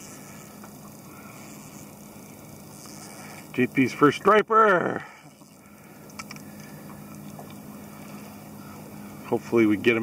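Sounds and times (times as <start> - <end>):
low motor hum: 0.0 - 10.0.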